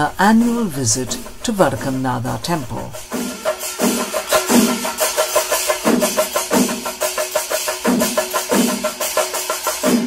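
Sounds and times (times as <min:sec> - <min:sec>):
drums beaten fast: 0:00.0 - 0:10.0
hand cymbals ringing: 0:03.0 - 0:10.0.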